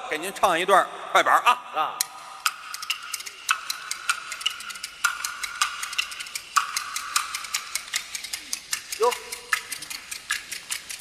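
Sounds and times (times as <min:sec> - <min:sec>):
bamboo clappers clacking: 0:02.0 - 0:11.0.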